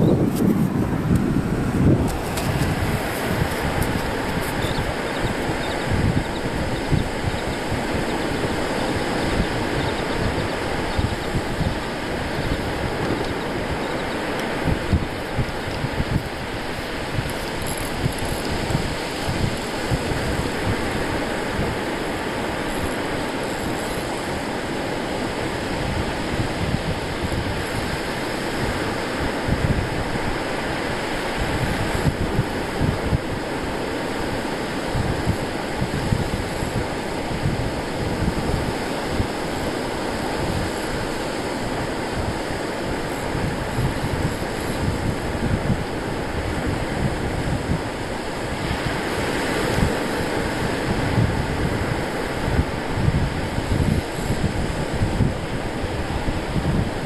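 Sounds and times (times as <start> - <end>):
surf breaking on beach: 0.0 - 57.0
wind buffeting microphone: 0.0 - 57.0.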